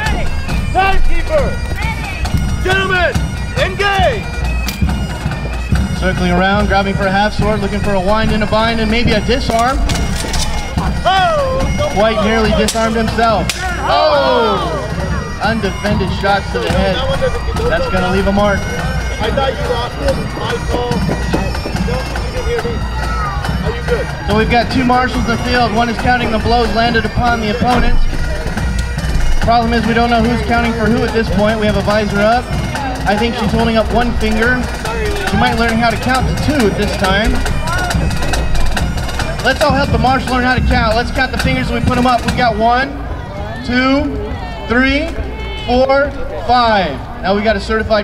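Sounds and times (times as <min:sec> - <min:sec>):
shouted calls: 0:00.0 - 0:47.8
bagpipes drone: 0:00.0 - 0:48.0
voices in background: 0:00.0 - 0:48.0.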